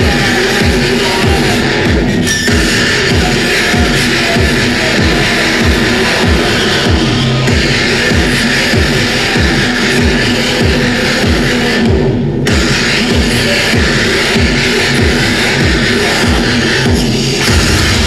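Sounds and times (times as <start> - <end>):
distorted noise wall: 0.0 - 18.0
pounding electronic kick beat: 0.0 - 18.0.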